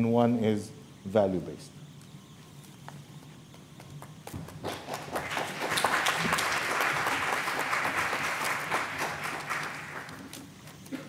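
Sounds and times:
audience applause: 4.5 - 10.4.

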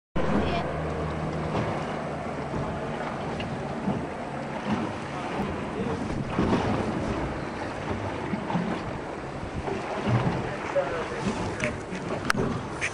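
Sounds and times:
choppy sea water: 0.2 - 12.9
low engine hum: 0.2 - 12.9
wind buffeting microphone: 0.2 - 12.9.

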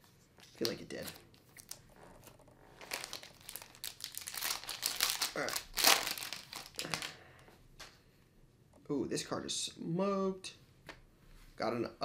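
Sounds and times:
foil wrapper crinkling: 0.6 - 7.2.

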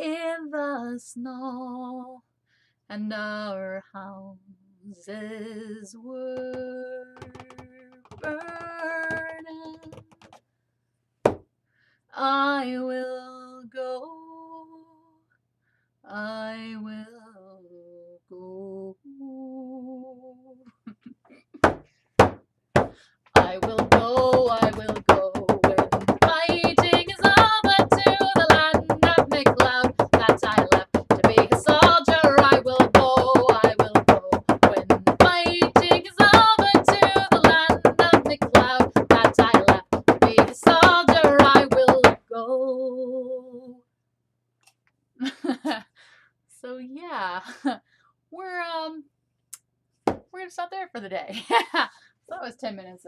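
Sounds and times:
woman singing: 0.0 - 2.2, 2.9 - 10.2, 12.2 - 15.2, 16.1 - 20.6, 23.4 - 43.8
frame drum beaten with tipper: 23.4 - 42.0.

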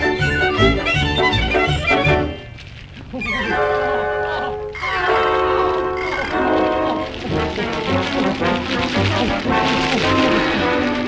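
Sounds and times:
orchestra playing held chords: 5.2 - 11.0.

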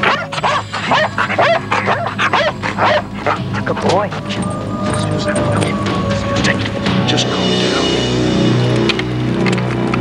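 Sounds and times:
dog barking and yipping: 0.0 - 6.9.

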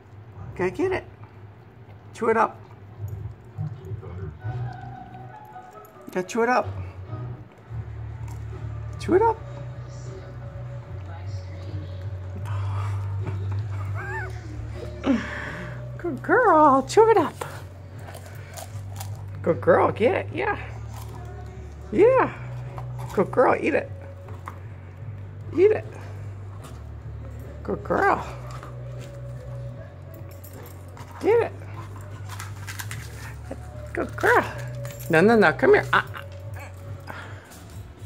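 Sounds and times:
steady low hum: 6.7 - 38.0.

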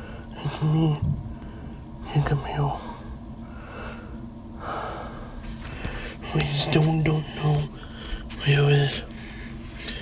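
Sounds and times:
person breathing close to microphone: 2.8 - 6.2.

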